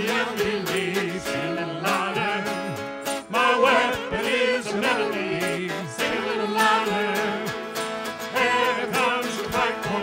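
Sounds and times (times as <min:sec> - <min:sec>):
worship song singing: 0:00.0 - 0:10.0.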